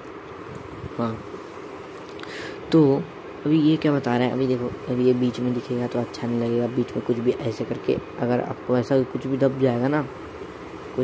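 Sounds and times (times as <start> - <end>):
steady low buzz: 0.0 - 11.0.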